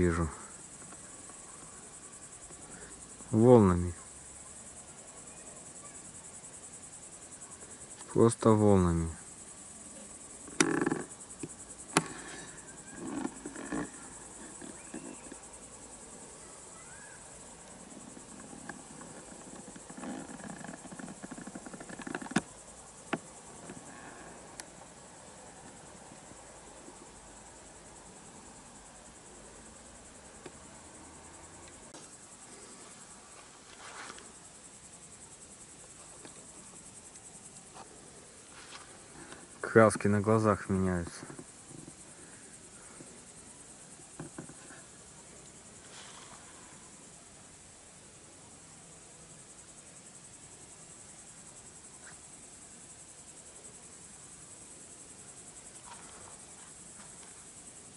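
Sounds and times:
crickets chirring: 0:00.0 - 0:57.9
knocks and rustles: 0:17.9 - 0:23.9, 0:44.1 - 0:44.8.

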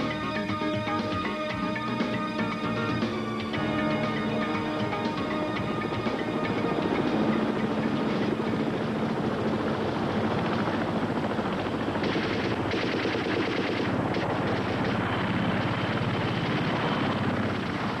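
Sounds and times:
airboat engine and propeller: 0:00.0 - 0:18.0
helicopter rotors: 0:00.0 - 0:18.0
rapid automatic gunfire: 0:11.8 - 0:16.7.

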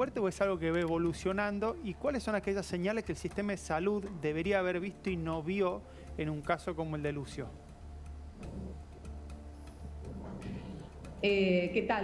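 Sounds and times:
faint ticking: 0:00.0 - 0:12.0.

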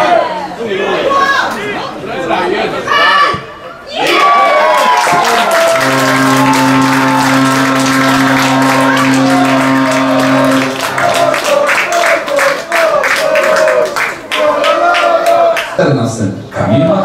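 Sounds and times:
crowd cheering and applause: 0:03.9 - 0:15.8
music with held chord: 0:05.8 - 0:10.9.

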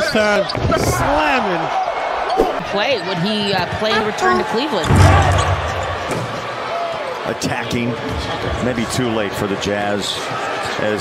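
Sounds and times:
basketball arena noise: 0:00.0 - 0:11.0.

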